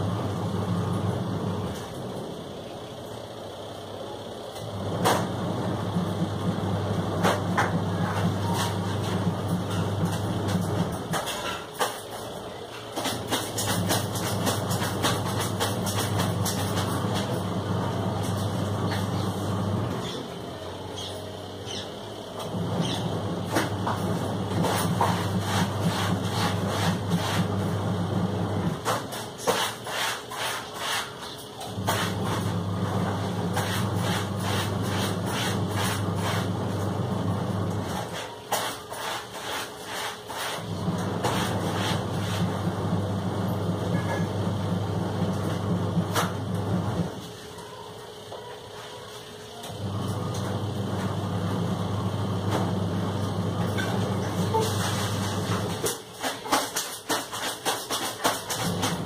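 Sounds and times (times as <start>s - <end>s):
low machine hum: 0.0s - 59.0s.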